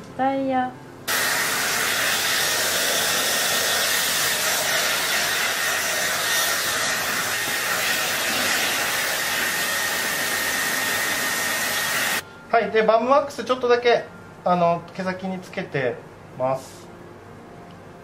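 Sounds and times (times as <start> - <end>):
hair dryer blowing: 1.1 - 12.2.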